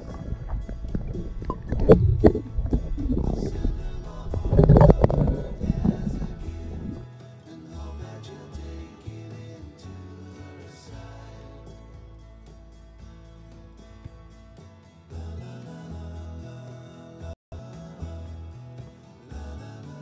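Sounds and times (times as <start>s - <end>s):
water gurgling and splashing: 0.0s - 7.0s
background music: 0.0s - 20.0s.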